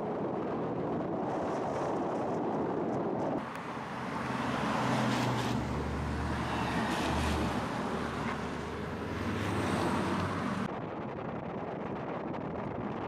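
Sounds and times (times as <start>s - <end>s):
wind on microphone: 0.0s - 13.0s
road noise: 0.1s - 11.5s
car engine hum: 3.4s - 10.7s.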